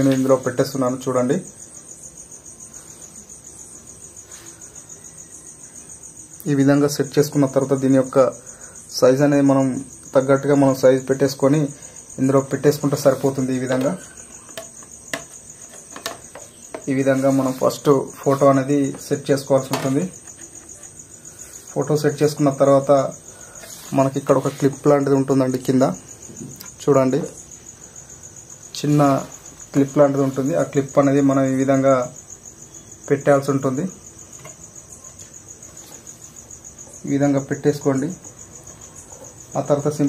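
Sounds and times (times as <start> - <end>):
cricket chirping: 0.0 - 40.0
person speaking: 6.4 - 14.5, 16.8 - 20.9, 21.6 - 27.4.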